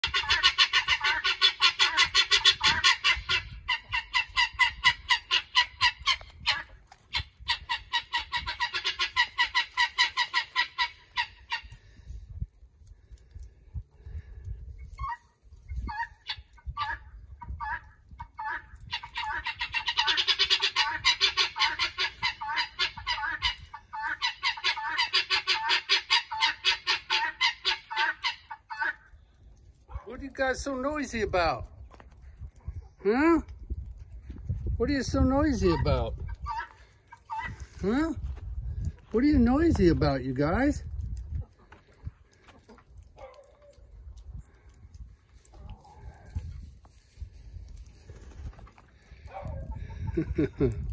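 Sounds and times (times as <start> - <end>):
guineafowl calling: 0.0 - 11.8, 15.0 - 29.2, 35.6 - 37.7.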